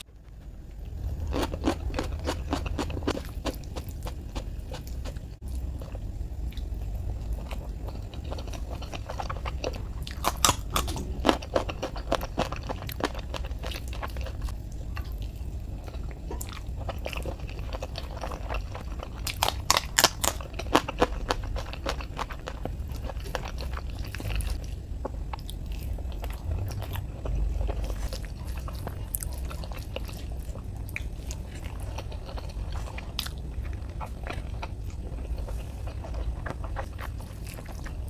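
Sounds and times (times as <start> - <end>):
person chewing food: 0.0 - 38.0
steady low hum: 0.0 - 38.0
crunchy bites: 8.4 - 14.4.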